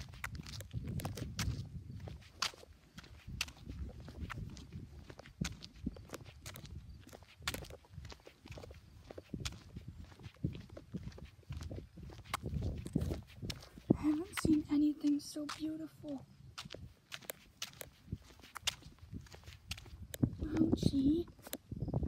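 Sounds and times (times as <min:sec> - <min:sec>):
footsteps on asphalt: 0:00.0 - 0:22.0.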